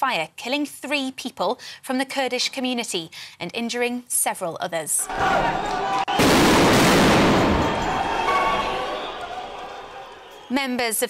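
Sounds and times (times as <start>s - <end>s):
loud bang: 6.1s - 8.9s.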